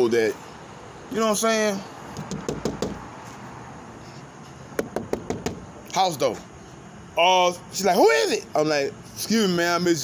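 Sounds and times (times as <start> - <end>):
knuckles knocking on hard surface: 2.2 - 3.0, 4.8 - 5.6.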